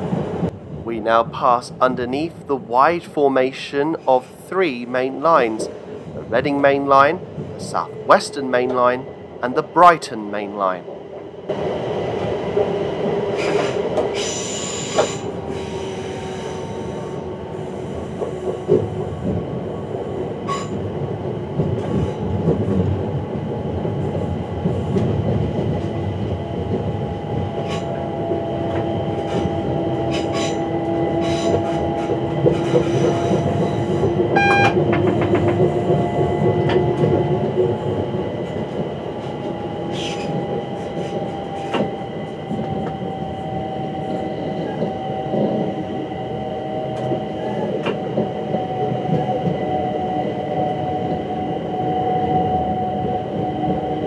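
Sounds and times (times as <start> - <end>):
electric train running on track: 0.0 - 54.0
wheels clicking over rail joints: 21.6 - 43.0.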